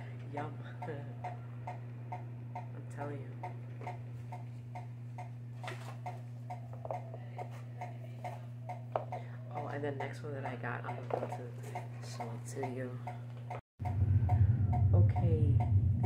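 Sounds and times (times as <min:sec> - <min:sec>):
low electrical hum: 0:00.0 - 0:16.0
quick regular ticking: 0:10.8 - 0:14.4.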